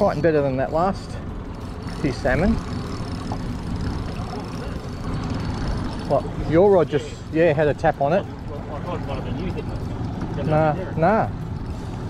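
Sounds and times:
spinning reel winding: 1.5s - 8.2s.

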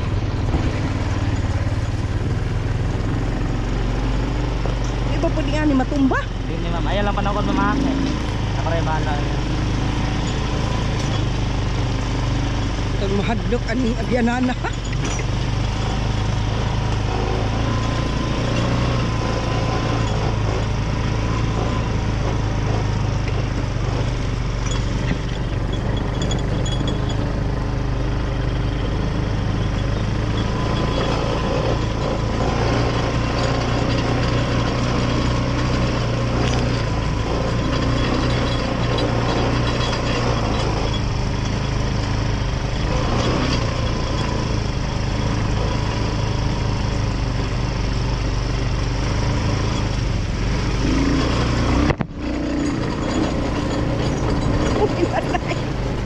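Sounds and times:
atv engine running: 0.0s - 56.0s.

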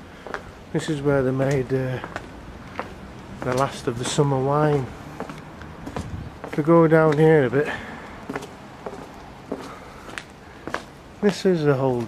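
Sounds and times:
low steady background noise: 0.0s - 12.0s
footsteps on cobblestones: 0.1s - 12.0s.

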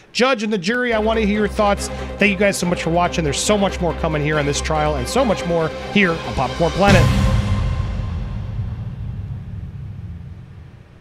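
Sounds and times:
bass-heavy outro music: 1.0s - 11.0s.

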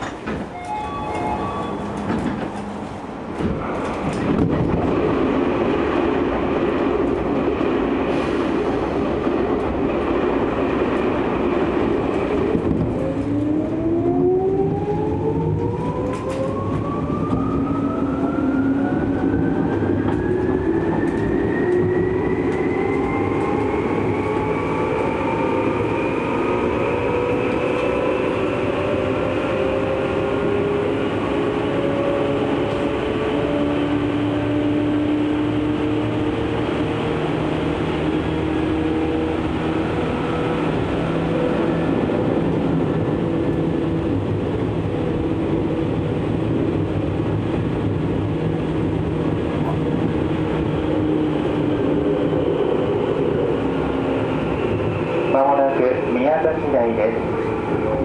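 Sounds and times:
train interior rumble: 0.0s - 58.0s
train passing: 0.0s - 58.0s.

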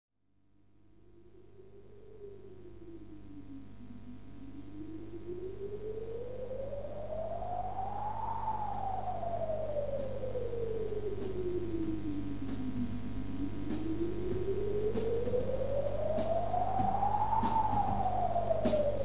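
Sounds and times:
steady low hum: 0.6s - 19.0s.

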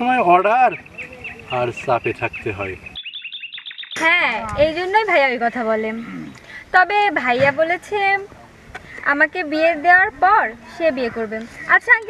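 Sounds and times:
man speaking: 0.0s - 2.9s
bird chirping: 0.0s - 6.8s.

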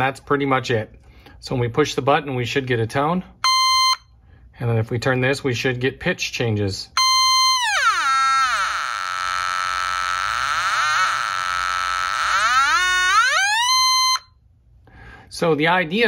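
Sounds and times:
electronic tone changing pitch: 7.0s - 14.3s.

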